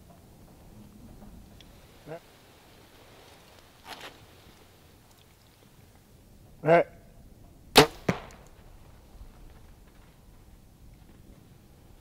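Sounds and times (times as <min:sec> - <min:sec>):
arrow striking target: 0:07.8 - 0:08.6.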